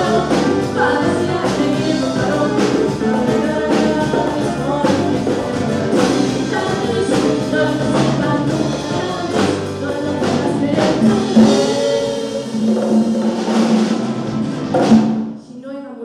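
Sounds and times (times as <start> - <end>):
woman singing into microphone: 0.0 - 12.7
band with drums: 0.0 - 15.4.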